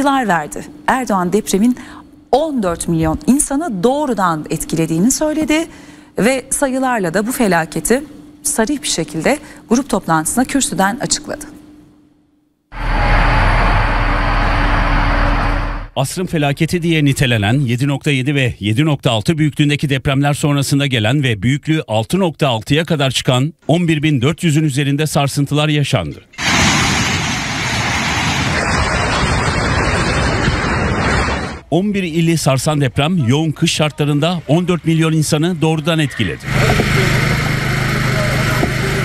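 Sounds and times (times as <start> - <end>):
loud rushing noise with rumble: 12.8 - 15.9, 26.4 - 31.7.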